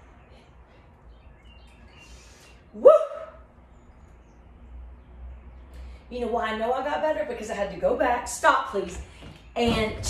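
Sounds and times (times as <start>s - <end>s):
woman whooping: 2.8s - 3.4s.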